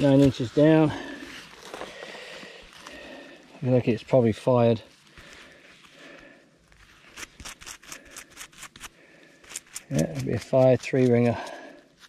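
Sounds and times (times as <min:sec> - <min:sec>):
hand brush scrubbing: 0:06.9 - 0:12.0.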